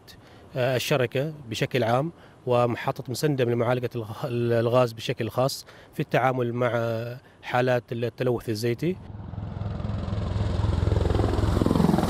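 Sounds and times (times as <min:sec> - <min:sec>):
helicopter flying past: 0:09.0 - 0:12.0.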